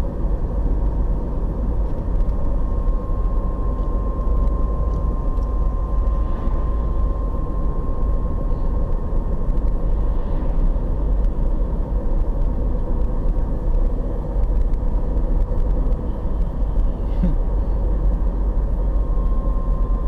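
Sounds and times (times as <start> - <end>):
car interior road rumble: 0.0 - 20.0
faint steady hum: 0.0 - 20.0.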